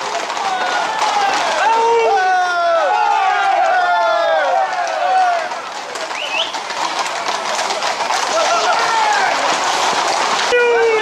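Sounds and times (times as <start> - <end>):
horse hooves clattering on road: 0.0 - 11.0
running feet on road: 0.0 - 11.0
men shouting: 0.3 - 5.6, 8.3 - 9.6.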